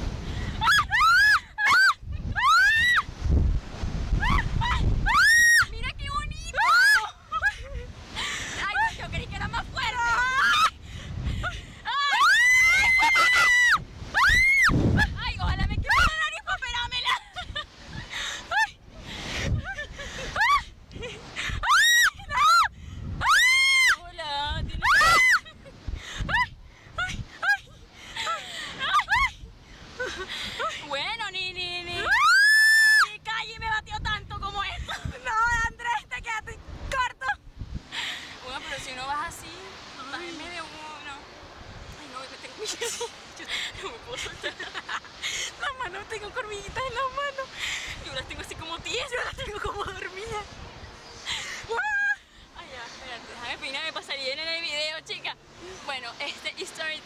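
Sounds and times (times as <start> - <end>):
wind rumbling on microphone: 0.0 - 57.0
people squealing and shrieking: 0.6 - 3.0, 11.9 - 14.8, 21.6 - 24.0, 24.8 - 25.4
people talking: 5.6 - 7.7, 8.6 - 10.7, 15.0 - 17.4, 24.0 - 25.3, 30.6 - 32.2, 33.0 - 37.4, 38.4 - 41.2, 42.0 - 44.8, 45.6 - 50.5, 51.7 - 57.0
riders screaming: 11.9 - 14.7, 32.0 - 33.1.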